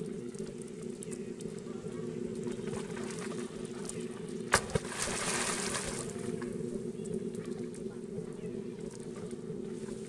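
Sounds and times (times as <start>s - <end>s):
water splashing: 2.4s - 6.5s
water sloshing: 2.4s - 6.6s.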